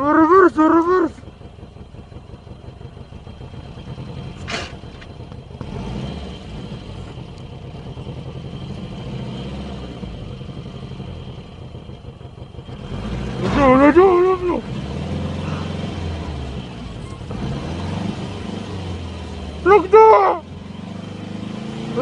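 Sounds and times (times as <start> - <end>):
car engine rumbling: 0.0 - 22.0.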